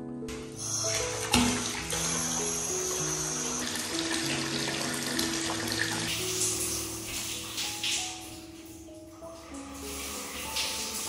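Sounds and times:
water pouring into bathtub: 0.3s - 11.0s.

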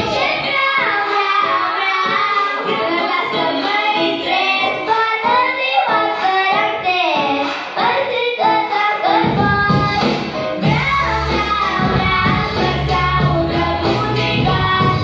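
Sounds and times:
boy singing into microphone: 0.0s - 15.0s
pop backing music: 0.0s - 15.0s.

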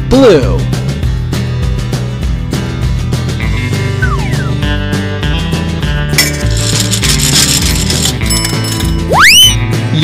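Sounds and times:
background music: 0.0s - 10.0s
coin clinking into gumball machine: 6.2s - 9.1s
gumball rattling: 6.3s - 8.9s.

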